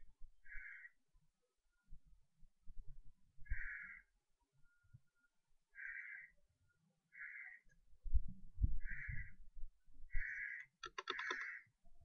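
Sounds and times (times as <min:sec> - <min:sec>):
animal rasping calls: 0:10.2 - 0:11.7.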